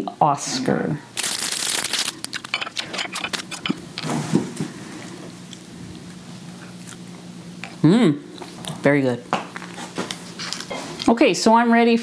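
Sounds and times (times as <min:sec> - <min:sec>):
packaging tearing and crinkling: 0:01.2 - 0:03.8.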